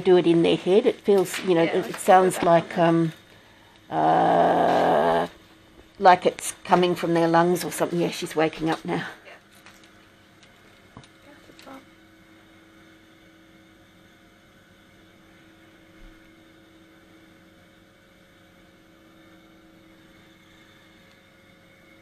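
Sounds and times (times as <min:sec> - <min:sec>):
faint electrical hum: 0:00.0 - 0:22.0.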